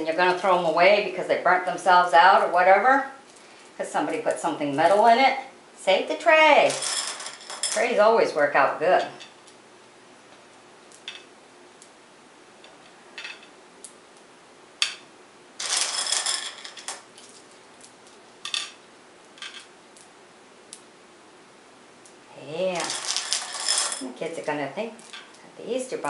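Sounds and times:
beans rattling: 6.6s - 8.1s, 15.6s - 18.8s, 22.7s - 25.4s.

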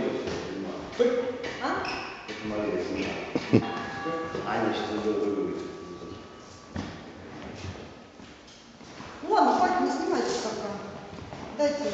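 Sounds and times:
faint footsteps on gym floor: 10.9s - 11.9s.

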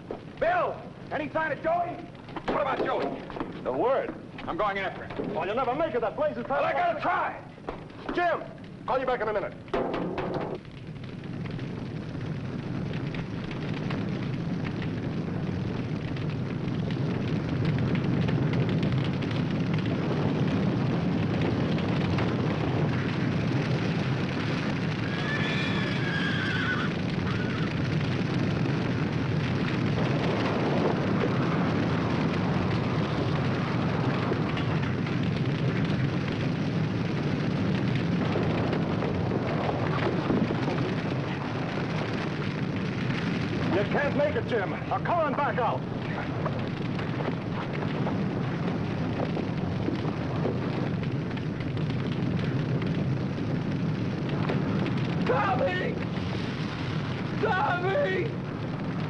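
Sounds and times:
forest fire burning: 0.0s - 59.0s
horse whinnying: 25.0s - 27.7s.

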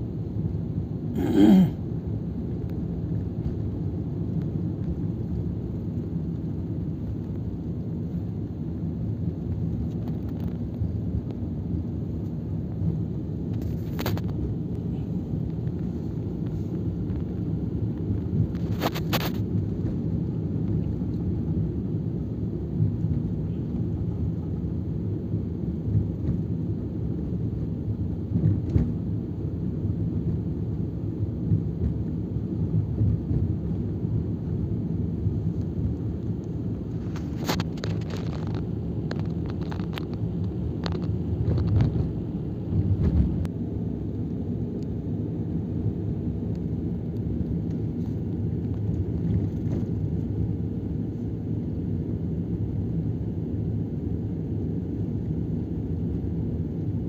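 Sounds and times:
vehicle driving rumble: 0.0s - 57.0s.

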